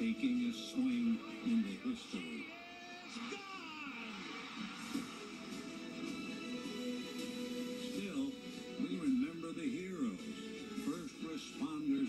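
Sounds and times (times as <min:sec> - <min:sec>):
music from television speakers: 0:00.0 - 0:12.0.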